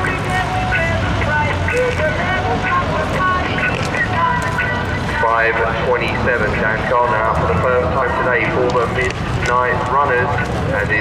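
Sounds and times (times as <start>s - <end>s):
public address announcer voice: 0.0s - 11.0s
race car engines idling and revving: 0.0s - 11.0s.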